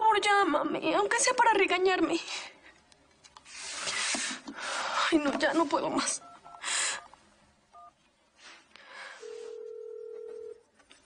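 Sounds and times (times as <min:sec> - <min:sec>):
telephone ringing tone: 0:09.2 - 0:10.7.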